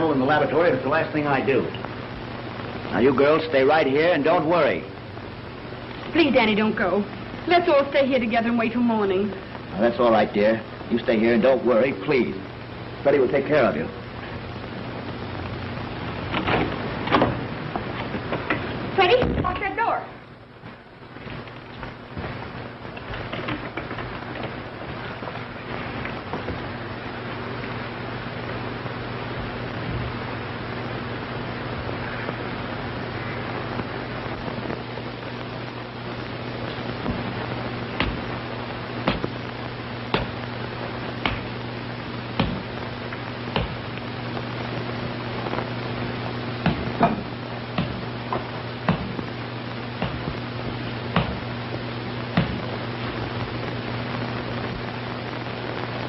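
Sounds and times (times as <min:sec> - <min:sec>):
rain-like hiss: 0:00.0 - 0:56.0
sharp crackles and pops: 0:00.0 - 0:56.0.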